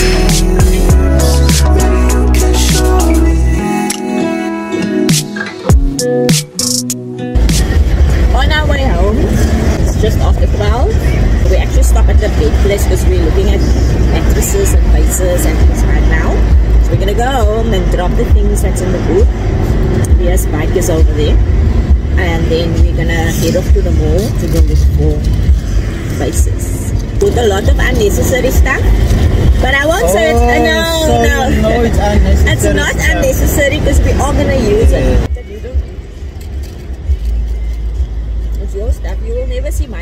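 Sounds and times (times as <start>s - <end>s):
road noise: 0.0s - 40.0s
wind buffeting microphone: 7.4s - 36.0s
indistinct talking: 26.2s - 36.2s.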